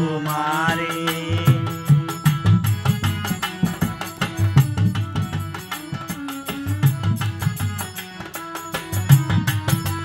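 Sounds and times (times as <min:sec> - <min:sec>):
harmonium chord: 0:00.0 - 0:10.0
bowed violin: 0:00.9 - 0:10.0.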